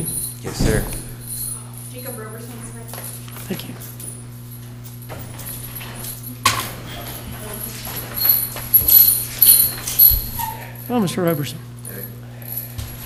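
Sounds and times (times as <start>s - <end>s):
steady electrical hum: 0.0s - 13.0s
shuffling handling noises: 2.7s - 10.8s.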